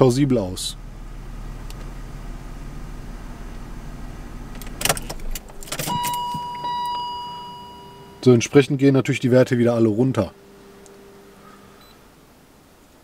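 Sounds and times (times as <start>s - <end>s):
car engine idling: 0.0s - 13.0s
ignition key clicks: 4.4s - 8.2s
high electronic warning tone: 5.9s - 8.5s.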